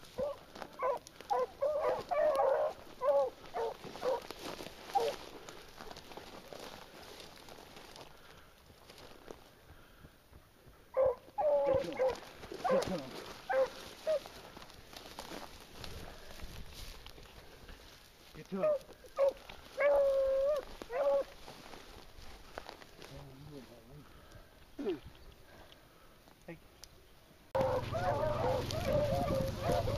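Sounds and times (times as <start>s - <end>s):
dog baying: 0.2s - 4.3s, 4.9s - 5.2s, 11.0s - 14.3s, 18.6s - 21.4s, 27.6s - 29.9s.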